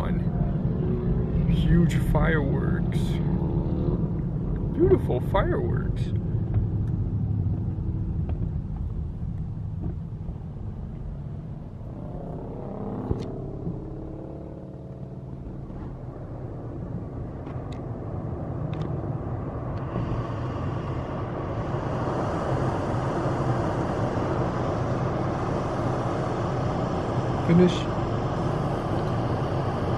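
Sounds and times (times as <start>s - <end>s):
engine and tyre rumble: 0.0s - 29.9s
tyre and road hiss: 19.4s - 29.9s.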